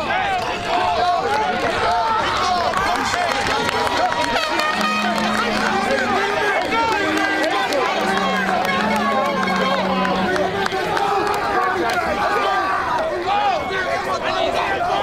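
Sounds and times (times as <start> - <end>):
many voices talking and shouting: 0.0 - 15.0
low steady held tone: 4.7 - 6.4, 7.0 - 10.8.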